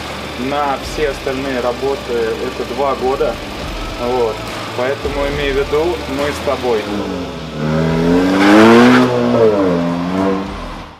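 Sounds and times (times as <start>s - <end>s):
car engine pulling away: 0.0s - 10.9s.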